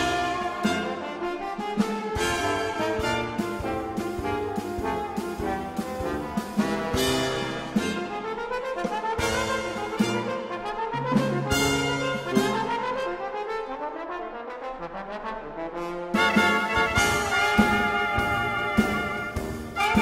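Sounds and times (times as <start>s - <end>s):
brass quintet playing blues: 0.0s - 20.0s.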